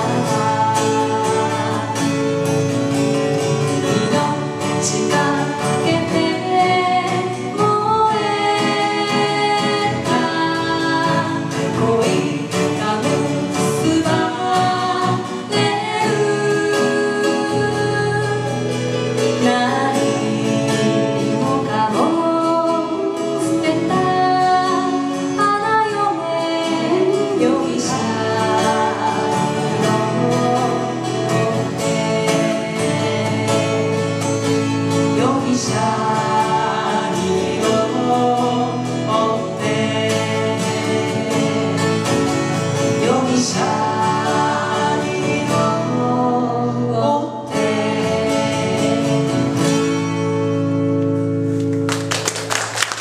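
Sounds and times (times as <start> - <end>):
man and woman singing: 0.0 - 50.2
strummed acoustic guitars: 0.0 - 53.0.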